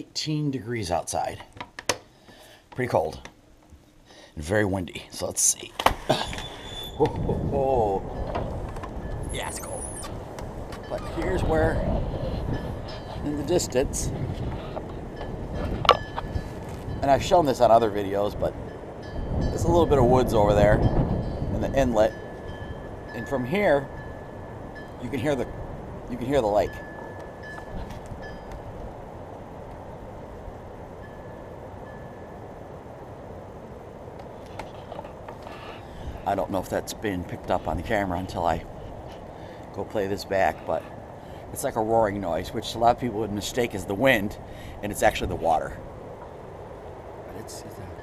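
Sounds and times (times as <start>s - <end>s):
distant lake water roaring: 5.4s - 48.0s
wind blowing on microphone: 6.0s - 32.2s, 34.2s - 48.0s.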